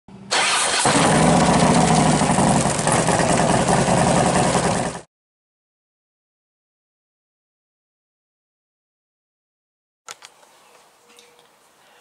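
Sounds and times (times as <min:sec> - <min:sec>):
motorcycle starter whirr: 0:00.2 - 0:05.0
motorcycle engine running: 0:00.9 - 0:05.1.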